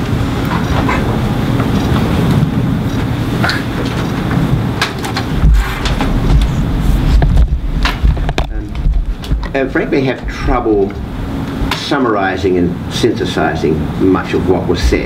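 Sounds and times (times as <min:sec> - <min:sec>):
knocks and clicks: 0:02.9 - 0:09.6
microphone handling rumble: 0:04.2 - 0:11.8, 0:14.8 - 0:15.0.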